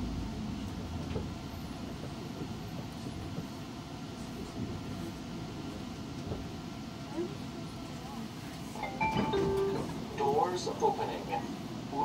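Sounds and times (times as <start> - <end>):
train hum: 0.0 - 12.0.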